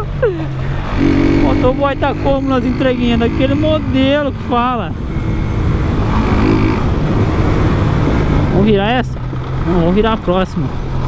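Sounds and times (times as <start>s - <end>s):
motorcycle engine running: 0.0s - 11.0s
wind noise on microphone: 0.0s - 11.0s.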